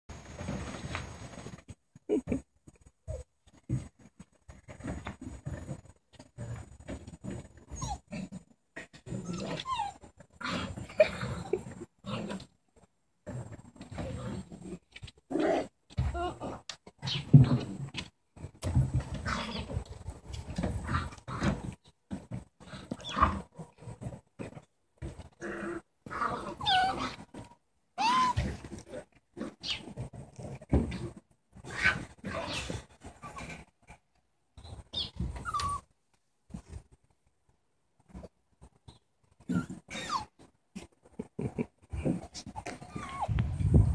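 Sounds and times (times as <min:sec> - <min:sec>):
puppies growling and yipping: 0:04.7 - 0:12.5, 0:19.1 - 0:28.8, 0:29.4 - 0:34.0, 0:34.7 - 0:35.9, 0:39.4 - 0:43.4.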